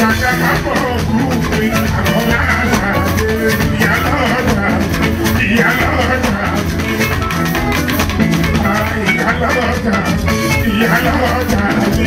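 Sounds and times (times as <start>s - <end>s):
live band music: 0.0s - 12.0s
man singing into microphone: 0.0s - 12.0s.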